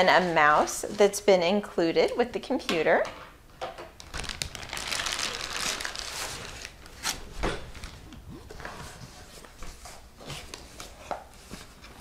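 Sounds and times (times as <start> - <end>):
plastic bag crinkling: 4.0 - 8.2.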